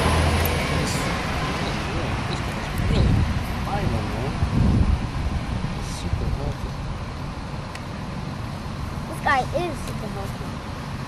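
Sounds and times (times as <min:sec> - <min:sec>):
low outdoor rumble: 0:00.0 - 0:11.0
child's voice: 0:09.1 - 0:10.6.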